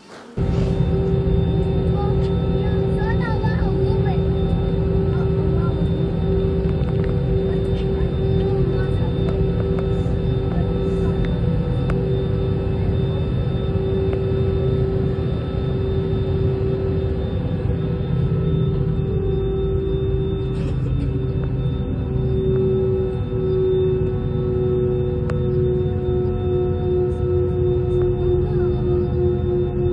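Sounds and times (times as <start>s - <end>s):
jet engine whine: 0.0s - 29.9s
jet engines humming: 0.0s - 29.9s
low rumble: 0.4s - 29.9s.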